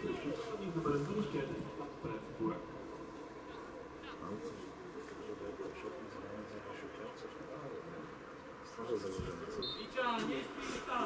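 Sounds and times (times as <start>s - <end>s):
distant murmur of voices: 0.0s - 11.0s.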